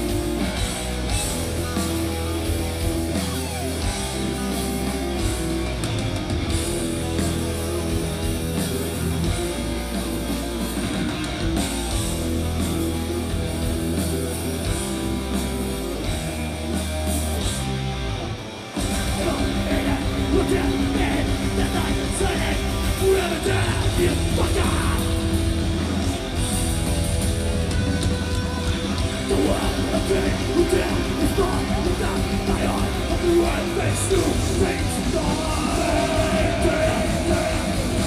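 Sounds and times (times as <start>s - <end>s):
bass guitar: 0.0s - 38.0s
distorted electric guitars: 0.0s - 38.0s
drums: 0.0s - 38.0s.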